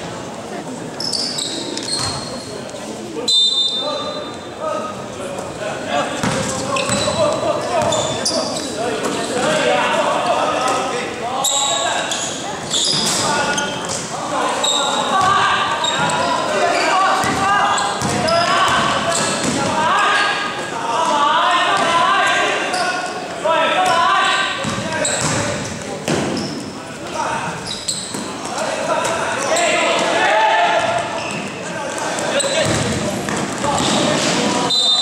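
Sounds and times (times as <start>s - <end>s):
voices echoing in a gym: 0.0s - 35.0s
sneakers squeaking: 0.9s - 4.5s, 6.1s - 9.6s, 11.4s - 20.6s, 21.7s - 35.0s
short high squeaks: 1.0s - 2.5s, 11.4s - 13.9s, 27.6s - 28.2s
basketball dribbling: 32.6s - 34.0s.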